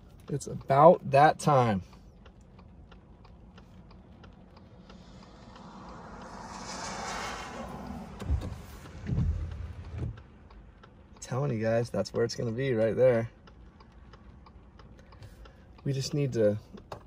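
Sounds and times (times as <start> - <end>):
tyre hiss on wet road: 4.8 - 9.7
dull low thumps: 7.6 - 10.4.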